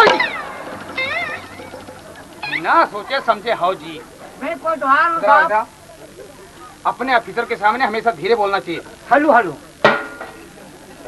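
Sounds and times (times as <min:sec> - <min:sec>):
man speaking: 0:02.4 - 0:05.7, 0:06.8 - 0:09.6.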